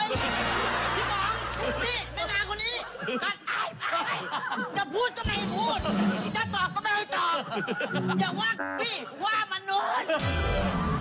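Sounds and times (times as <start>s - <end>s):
people laughing: 0.0s - 11.0s
people talking: 0.8s - 10.1s.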